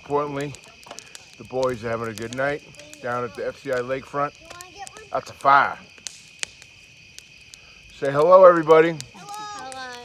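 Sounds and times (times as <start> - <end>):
bonfire crackling pops: 0.0 - 10.0
crickets chirping: 0.0 - 10.0.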